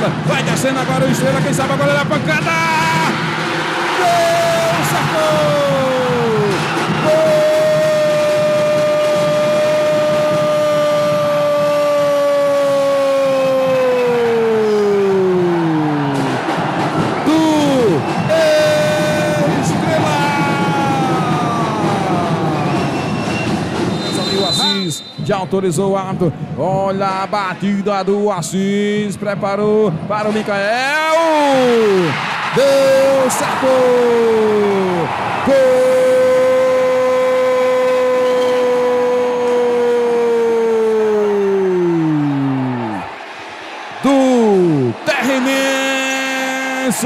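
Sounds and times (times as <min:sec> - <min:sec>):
commentator shouting: 0:04.0 - 0:15.7, 0:17.2 - 0:22.6, 0:30.8 - 0:43.0, 0:44.0 - 0:47.0.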